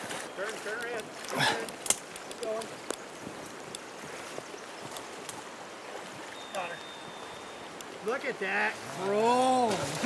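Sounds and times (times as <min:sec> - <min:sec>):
faint water splashes: 0:00.0 - 0:10.0
river running over gravel: 0:00.0 - 0:10.0.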